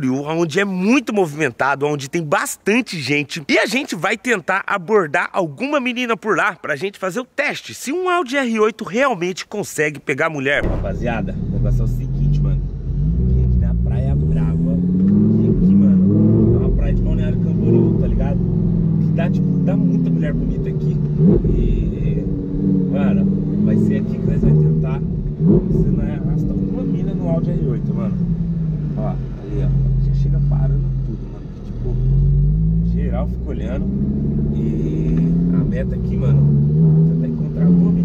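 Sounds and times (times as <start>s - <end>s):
car engine accelerating: 10.6s - 38.0s.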